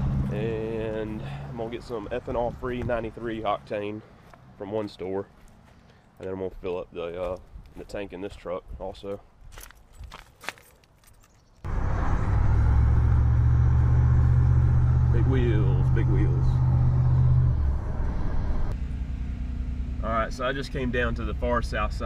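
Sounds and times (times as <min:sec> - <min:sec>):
pickup engine droning: 0:00.0 - 0:03.2, 0:11.7 - 0:22.0
road noise: 0:00.0 - 0:07.8, 0:10.4 - 0:22.0.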